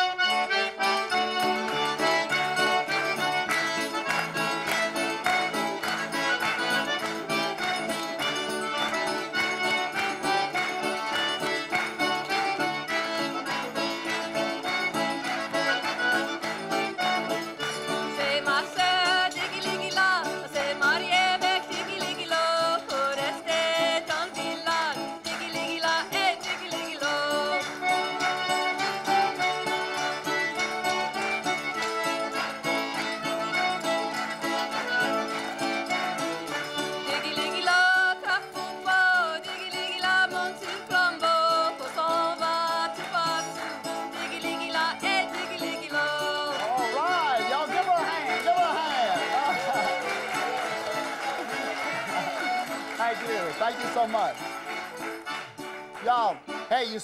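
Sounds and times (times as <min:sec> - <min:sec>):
accordion: 0:00.0 - 0:57.0
fiddle: 0:00.0 - 0:57.0
folk band playing: 0:00.0 - 0:57.0.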